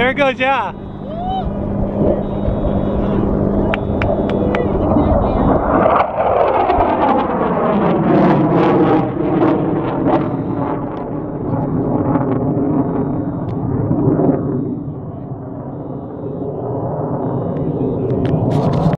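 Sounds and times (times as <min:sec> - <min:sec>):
jet roaring overhead: 0:00.0 - 0:18.9.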